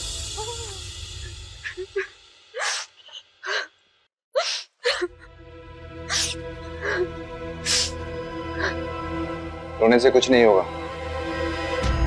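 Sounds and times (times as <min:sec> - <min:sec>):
dramatic background music: 0:05.1 - 0:12.0.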